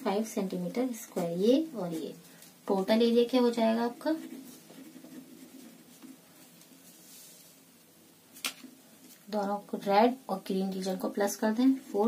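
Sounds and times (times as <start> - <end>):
person speaking: 0.0 - 6.2, 9.2 - 12.0
pen scratching on paper: 3.4 - 6.2.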